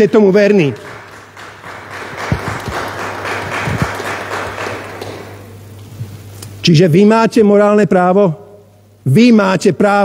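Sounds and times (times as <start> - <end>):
scattered applause: 0.5 - 5.5.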